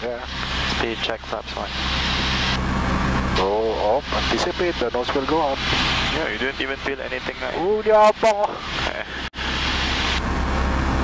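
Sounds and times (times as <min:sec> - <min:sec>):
propeller plane engine droning: 0:00.0 - 0:11.0.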